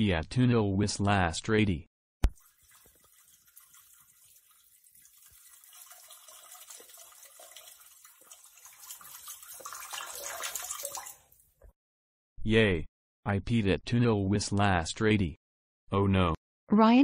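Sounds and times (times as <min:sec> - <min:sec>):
stream of liquid splashing: 0:02.3 - 0:11.4.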